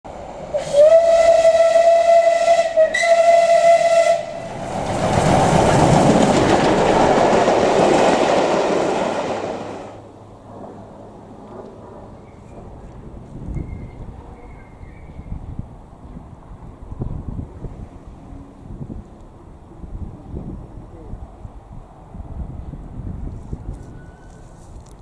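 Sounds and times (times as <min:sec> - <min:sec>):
loud rushing steam hiss: 0:00.2 - 0:02.8, 0:03.5 - 0:10.0
steam locomotive whistle: 0:00.5 - 0:04.4.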